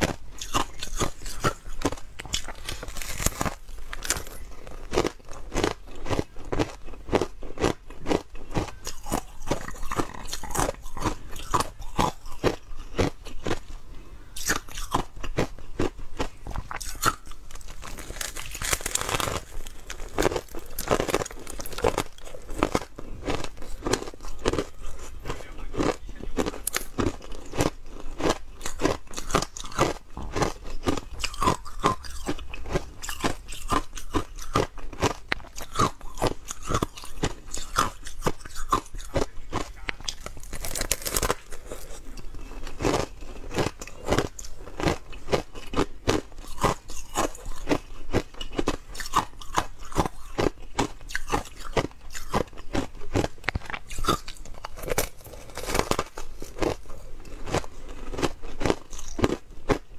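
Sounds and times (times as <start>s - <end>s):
ice crunching while chewed: 0.0s - 59.9s.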